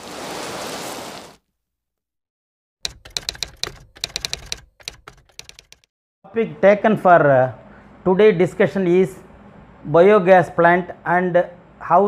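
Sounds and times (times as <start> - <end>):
keyboard key clicks: 2.9 - 5.9.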